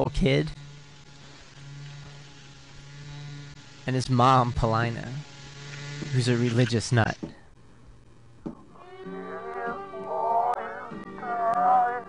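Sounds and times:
man talking: 0:06.2 - 0:07.3.

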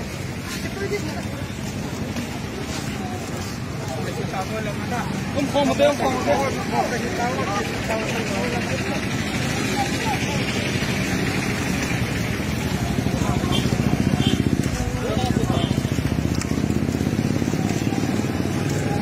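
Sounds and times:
indistinct voices: 0:00.0 - 0:19.0
vehicle engine running: 0:00.0 - 0:19.0.

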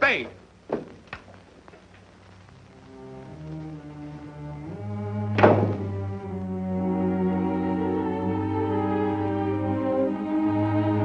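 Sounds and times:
orchestral strings: 0:02.7 - 0:11.0
door slamming shut: 0:05.3 - 0:05.9.

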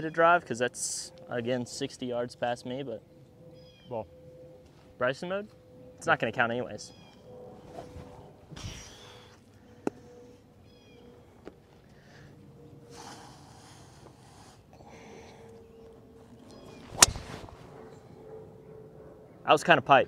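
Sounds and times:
golf club striking ball: 0:16.7 - 0:17.5
golf club swishing through air: 0:16.7 - 0:17.7.

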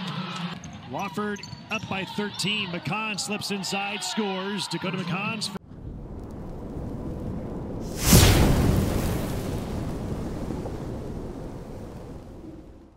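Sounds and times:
heavy boom with falling sweep: 0:05.8 - 0:12.9.

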